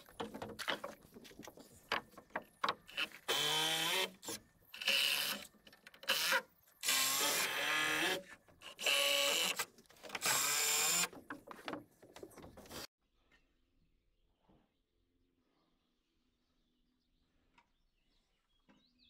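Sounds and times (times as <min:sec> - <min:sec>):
cordless drill driving screws: 0:06.1 - 0:11.1.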